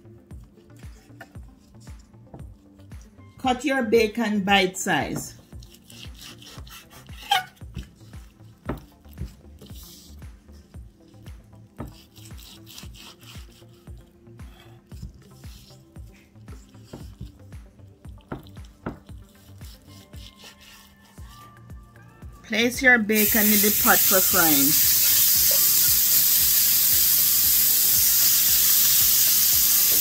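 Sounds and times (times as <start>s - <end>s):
knife sawing through bacon: 5.4s - 17.5s, 18.1s - 21.6s, 23.2s - 30.0s.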